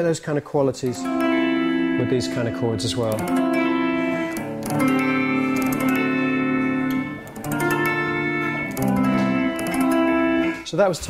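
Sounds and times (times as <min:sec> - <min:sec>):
guitar chords ringing: 0:00.8 - 0:10.7.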